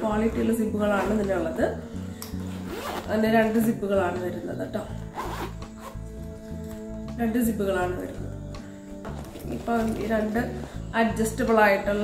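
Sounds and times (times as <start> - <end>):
backpack zipper being pulled: 2.4 - 3.1, 5.0 - 6.0, 9.1 - 10.8.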